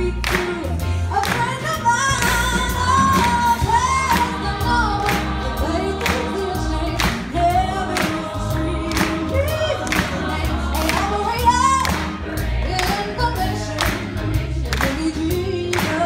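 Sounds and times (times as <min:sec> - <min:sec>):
bass guitar: 0:00.0 - 0:16.0
drum kit beat: 0:00.0 - 0:16.0
people singing: 0:00.0 - 0:16.0.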